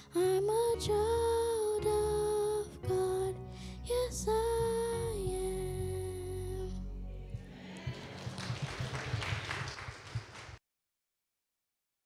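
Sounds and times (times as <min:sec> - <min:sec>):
congregation applauding: 0:07.5 - 0:10.6.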